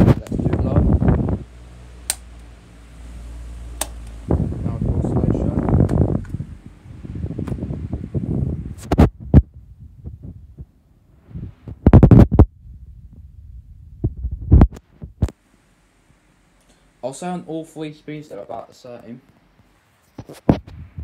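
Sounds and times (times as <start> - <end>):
fan airflow buffeting microphone: 0.0 - 15.4, 16.0 - 21.0.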